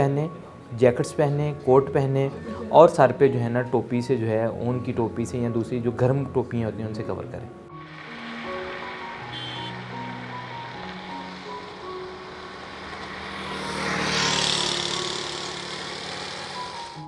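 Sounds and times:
background music with held notes: 0.0s - 17.0s
motorcycle passing: 7.8s - 17.0s.

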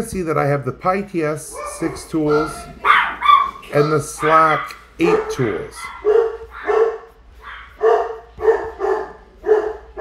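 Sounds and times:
dog barking: 1.5s - 10.0s.

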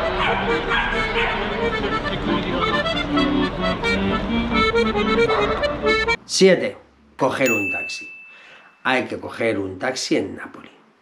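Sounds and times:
piano accordion playing a tune: 0.0s - 6.2s.

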